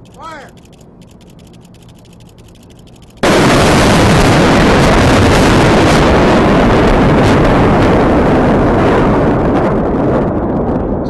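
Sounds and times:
explosive demolition blast: 3.1 - 11.0.

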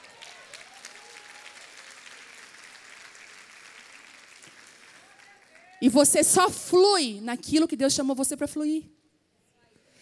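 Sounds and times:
audience applause: 0.0 - 5.8.

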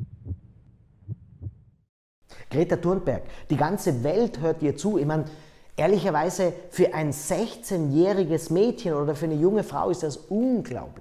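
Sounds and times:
low hum: 0.0 - 1.8
soft low thumps: 0.0 - 1.8.

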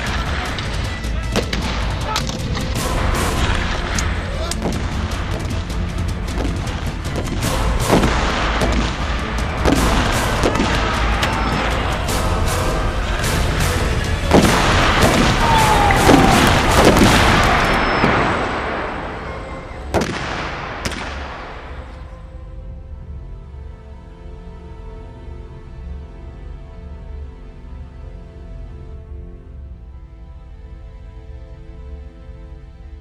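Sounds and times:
gunshots: 0.0 - 22.1
dense din: 0.0 - 22.2
low rumble: 0.0 - 23.9
rapid gunfire: 4.6 - 18.8
single gunshots: 14.3 - 19.3, 19.9 - 21.9.

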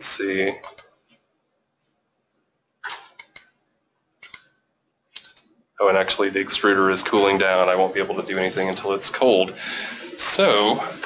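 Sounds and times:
computer mouse clicking: 0.6 - 0.9, 2.9 - 3.6, 4.2 - 4.6, 5.2 - 5.5.

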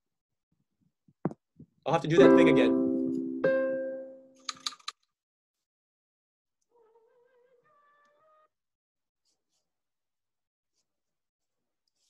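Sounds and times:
computer keyboard clicks: 4.4 - 5.0.

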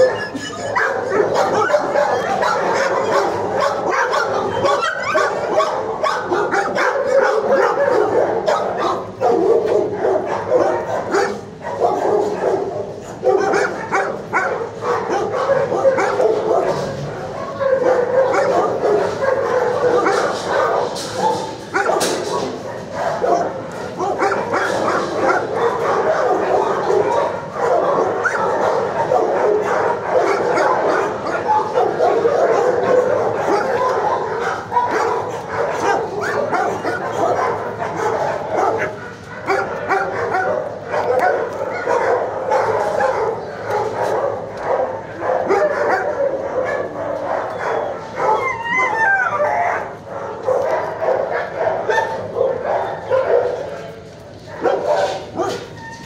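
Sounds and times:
many dogs barking and yipping: 0.0 - 56.0.

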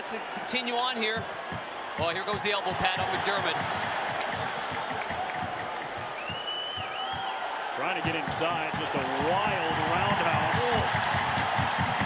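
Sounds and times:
crowd cheering and applauding: 0.0 - 12.0
long high whistle: 6.2 - 7.2.

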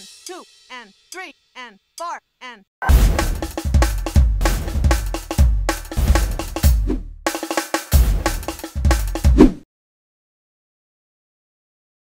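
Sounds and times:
drum kit playing: 0.0 - 1.4, 2.8 - 9.5.

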